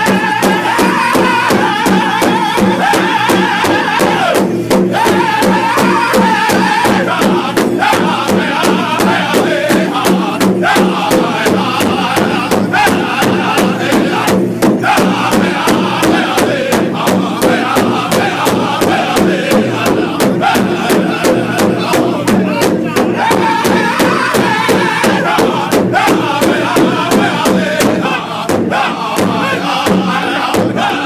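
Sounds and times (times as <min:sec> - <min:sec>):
bass drum beating: 0:00.0 - 0:31.0
men chanting together: 0:00.0 - 0:31.0.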